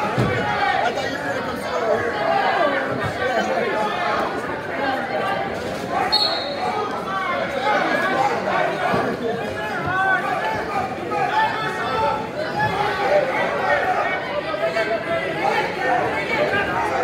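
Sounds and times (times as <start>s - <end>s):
many voices talking and calling out: 0.0s - 17.0s.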